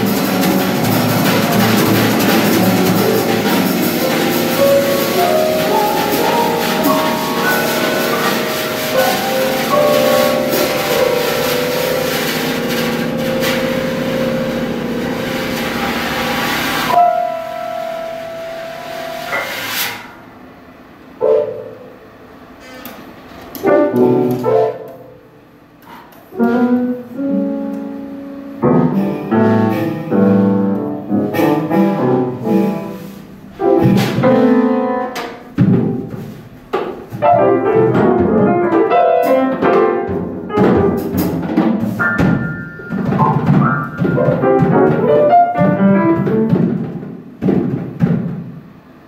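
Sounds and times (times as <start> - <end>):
piano notes and chords: 0.0 - 19.8, 20.6 - 49.0
drum kit and cymbals: 0.0 - 20.2.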